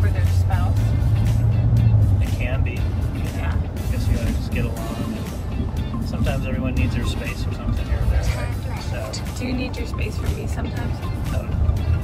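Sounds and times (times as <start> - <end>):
people talking: 0.0 - 0.8, 2.2 - 5.4, 6.0 - 11.6
car cabin rumble: 0.0 - 12.0
music: 0.0 - 12.0.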